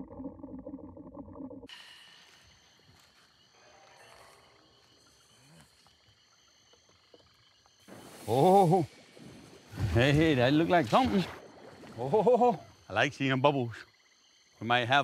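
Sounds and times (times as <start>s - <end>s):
rustling of water plants: 6.8s - 12.3s.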